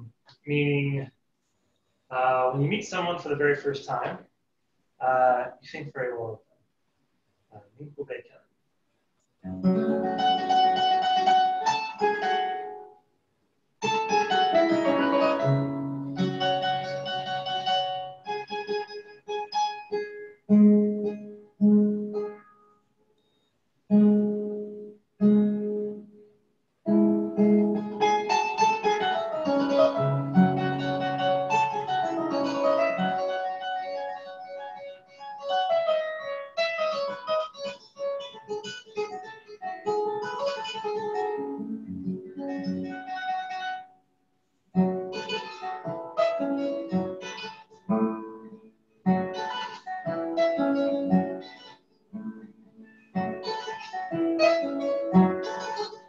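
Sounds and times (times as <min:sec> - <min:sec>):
harp plucked solo: 0:13.8 - 0:20.2, 0:27.0 - 0:37.6.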